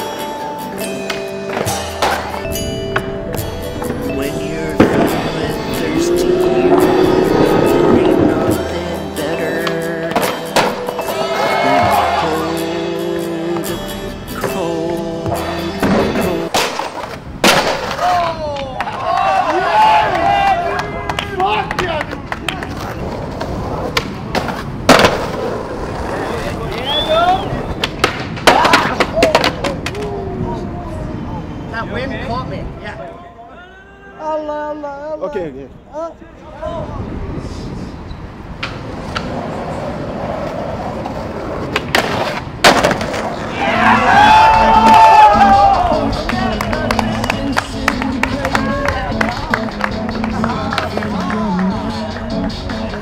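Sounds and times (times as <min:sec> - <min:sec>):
music soundtrack: 0:00.0 - 0:16.6, 0:43.7 - 0:53.0
people calling out: 0:04.1 - 0:08.8, 0:11.0 - 0:12.8, 0:43.4 - 0:47.5
skateboard impact and landing: 0:04.8 - 0:05.3, 0:10.1 - 0:11.2, 0:15.8 - 0:18.4, 0:22.7 - 0:26.1, 0:27.7 - 0:30.1, 0:40.9 - 0:43.5
skateboard clack on pavement: 0:15.8 - 0:19.1, 0:20.8 - 0:27.0, 0:27.6 - 0:30.2, 0:38.6 - 0:39.6, 0:40.2 - 0:43.5, 0:46.2 - 0:53.0.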